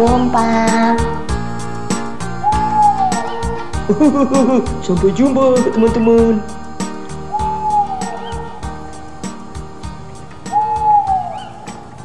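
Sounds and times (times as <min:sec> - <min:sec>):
children's song backing music: 0:00.0 - 0:12.0
owl-like hoot: 0:02.4 - 0:03.6, 0:07.3 - 0:08.6, 0:10.5 - 0:11.7.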